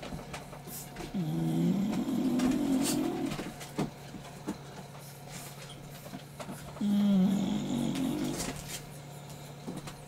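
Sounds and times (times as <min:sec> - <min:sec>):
puppy moaning: 0:01.0 - 0:03.6, 0:06.8 - 0:08.7.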